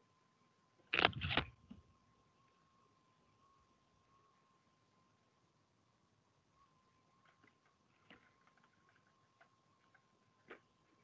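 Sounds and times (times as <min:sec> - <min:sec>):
faint steady high tone: 0:01.8 - 0:07.6.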